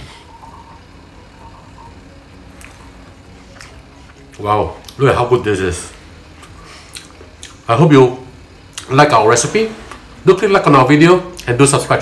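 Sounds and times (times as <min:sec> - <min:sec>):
person chewing food: 0:02.6 - 0:05.0, 0:06.4 - 0:07.6.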